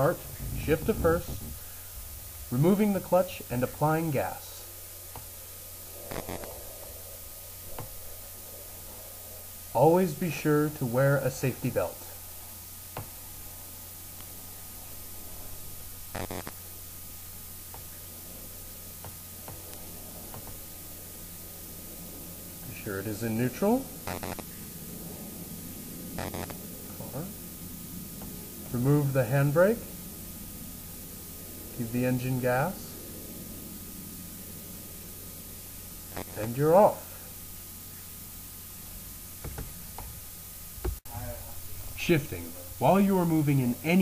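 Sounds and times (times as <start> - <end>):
background hiss: 0.0 - 44.0
steady low hum: 0.0 - 44.0.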